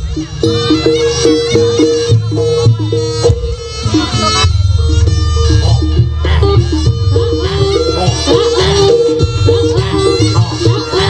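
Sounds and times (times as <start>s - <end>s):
reedy wind instrument melody: 0.0s - 11.0s
steady drum beat: 0.0s - 11.0s.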